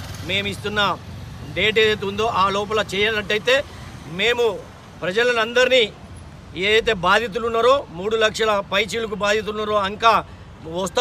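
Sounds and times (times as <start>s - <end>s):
man speaking: 0.3s - 11.0s.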